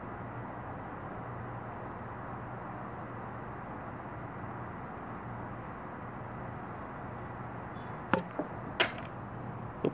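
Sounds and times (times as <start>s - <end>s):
knocks on plastic container: 8.1s - 9.1s.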